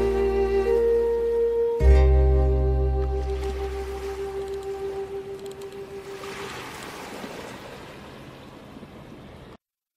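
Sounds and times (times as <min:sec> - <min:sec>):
held music note: 0:00.0 - 0:06.1.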